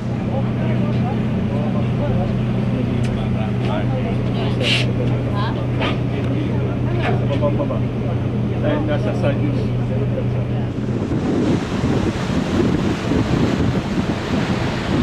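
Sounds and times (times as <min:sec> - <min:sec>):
boat engine drone: 0:00.0 - 0:15.0.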